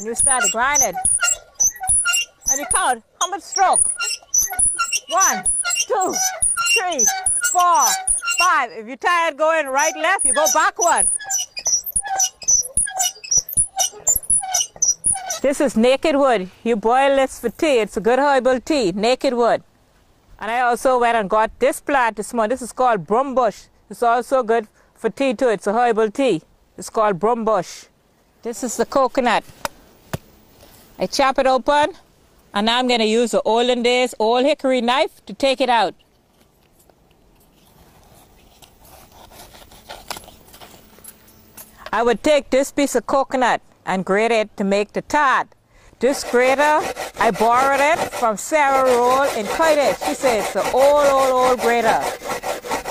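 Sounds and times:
knife scraping coconut shell: 0:00.0 - 0:08.6, 0:09.7 - 0:15.5, 0:38.1 - 0:40.8, 0:46.0 - 0:52.9
hand mill squeaking and knocking: 0:00.0 - 0:08.8, 0:09.5 - 0:15.8, 0:46.0 - 0:52.9.

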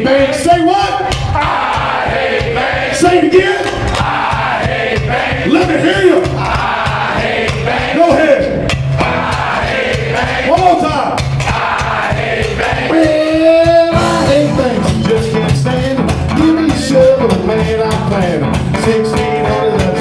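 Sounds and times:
rock and roll band music: 0:00.0 - 0:20.0
person singing: 0:12.8 - 0:20.0.

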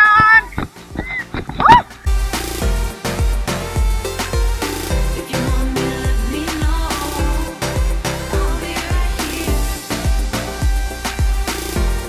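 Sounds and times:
heavy bass beat: 0:00.0 - 0:12.0.

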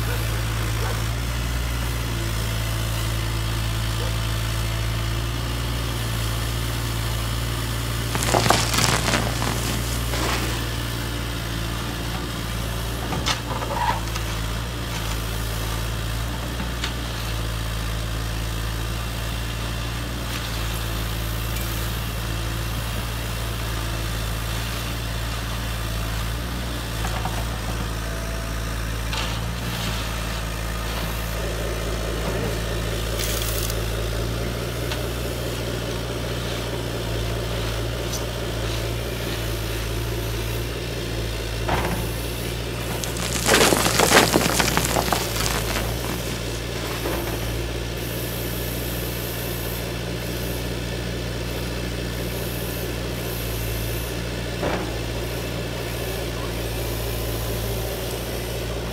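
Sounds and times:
stones pouring into truck bed: 0:07.9 - 0:11.8, 0:41.9 - 0:47.8
stones grinding and scraping: 0:08.1 - 0:11.2, 0:42.6 - 0:47.6
model excavator humming: 0:27.4 - 0:50.8.

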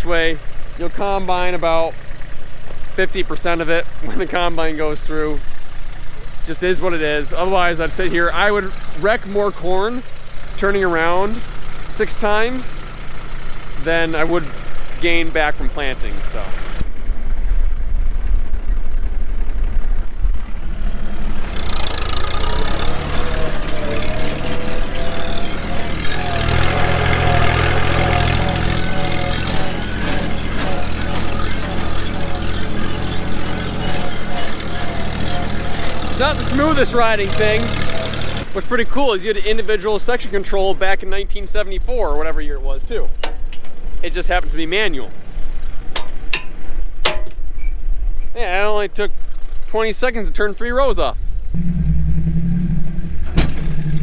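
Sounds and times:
tractor engine running: 0:00.0 - 0:42.2, 0:51.2 - 0:54.0
wavering high tone: 0:22.9 - 0:38.2, 0:51.5 - 0:54.0
steady low rumble: 0:51.2 - 0:54.0.

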